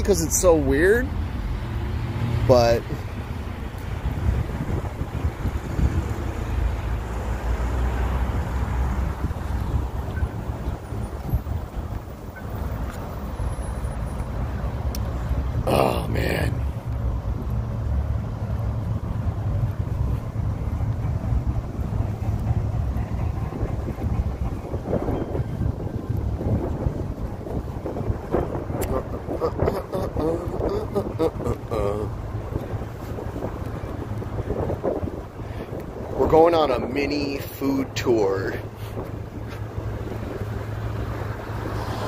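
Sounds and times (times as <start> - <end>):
road traffic passing: 0.0 - 42.0
wind rumble on microphone: 1.2 - 13.3, 16.2 - 42.0.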